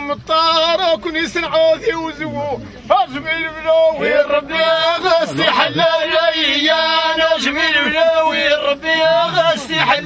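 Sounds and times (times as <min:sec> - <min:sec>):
men chanting: 0:00.0 - 0:10.0.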